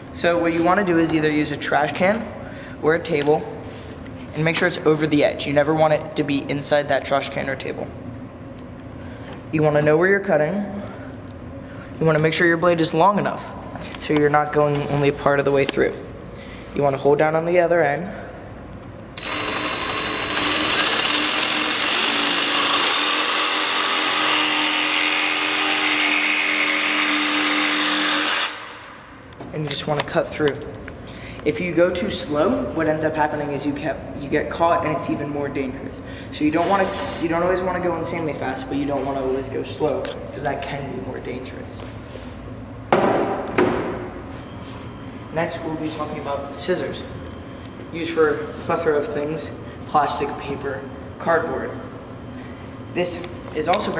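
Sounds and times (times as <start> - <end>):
jigsaw cutting wood: 19.2 - 28.7.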